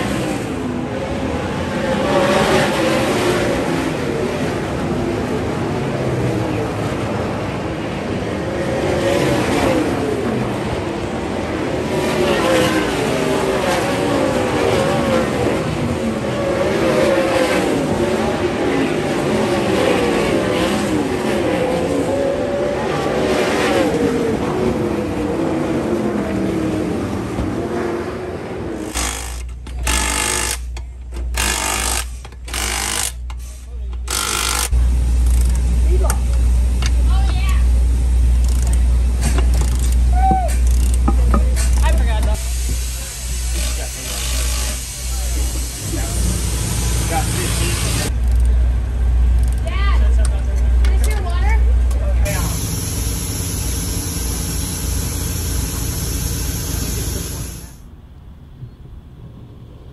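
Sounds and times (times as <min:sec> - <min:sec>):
race car engines: 0:00.0 - 0:31.4, 0:34.7 - 0:44.1, 0:44.7 - 0:59.9.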